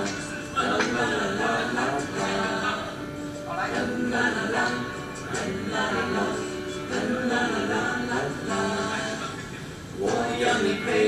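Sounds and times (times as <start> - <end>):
voices singing la la la: 0.0 - 11.0.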